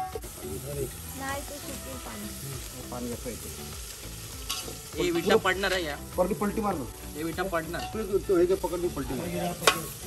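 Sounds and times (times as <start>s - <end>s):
chicken sizzling in a pot: 0.0s - 10.0s
people talking: 0.5s - 3.4s.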